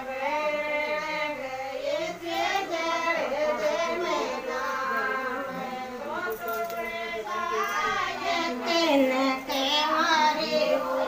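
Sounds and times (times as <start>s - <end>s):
high voice singing devotional song: 0.0s - 11.0s.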